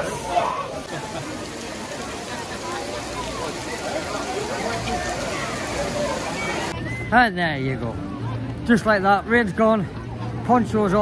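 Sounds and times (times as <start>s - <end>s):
heavy rain hissing: 0.0s - 6.7s
people talking nearby: 0.0s - 11.0s.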